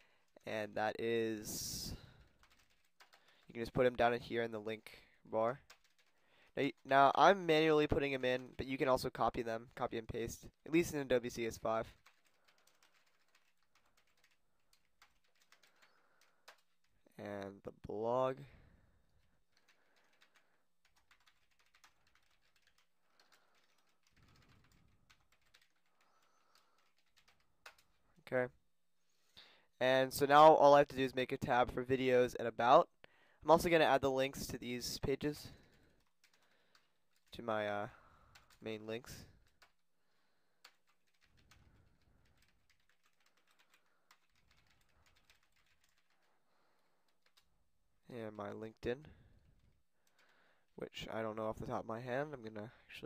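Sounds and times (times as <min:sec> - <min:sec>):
typing on computer keyboard: 0:02.1 - 0:03.5, 0:05.6 - 0:06.9, 0:11.8 - 0:16.9, 0:19.2 - 0:28.0, 0:35.5 - 0:37.3, 0:38.3 - 0:38.6, 0:39.3 - 0:39.8, 0:40.6 - 0:46.4, 0:47.0 - 0:47.5, 0:50.0 - 0:50.4.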